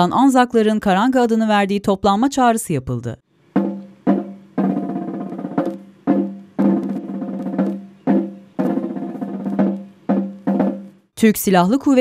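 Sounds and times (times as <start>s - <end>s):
side drum roll and strokes: 3.5s - 11.1s.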